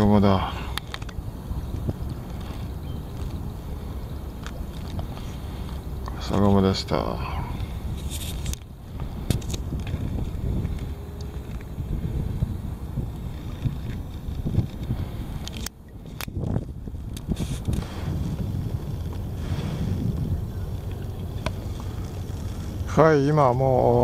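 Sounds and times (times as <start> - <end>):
wind rumbling on microphone: 0.0 - 24.0.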